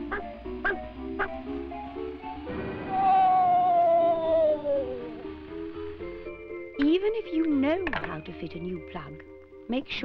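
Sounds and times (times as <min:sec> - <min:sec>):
background music: 0:00.0 - 0:10.0
cartoon electric shock wail: 0:02.7 - 0:05.3.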